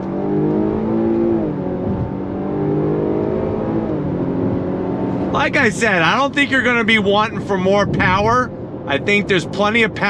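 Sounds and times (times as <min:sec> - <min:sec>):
car engine accelerating: 0:00.0 - 0:10.0.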